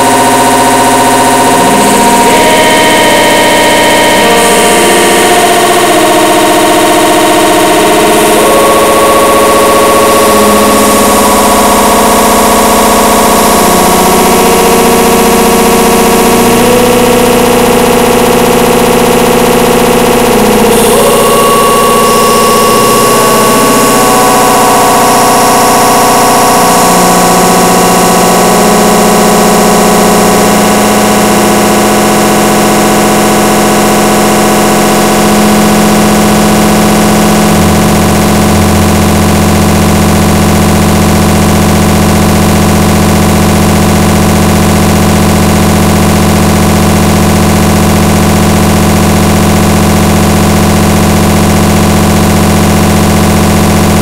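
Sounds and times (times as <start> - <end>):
sustained synthesizer tones: 0.0 - 54.0.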